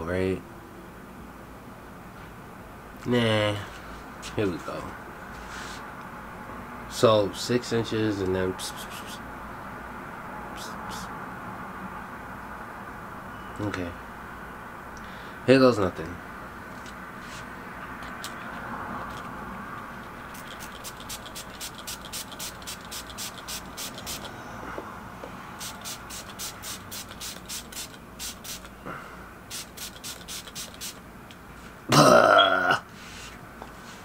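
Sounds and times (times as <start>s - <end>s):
spray bottle hissing: 20.3s - 24.3s, 25.6s - 28.8s, 29.5s - 31.0s
person's short vocal sound: 31.9s - 32.9s.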